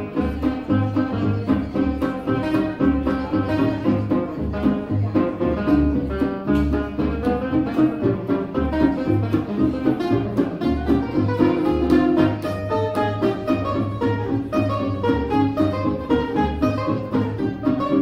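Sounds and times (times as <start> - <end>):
acoustic guitars playing jazz: 0.0 - 18.0
plucked double bass: 0.0 - 18.0.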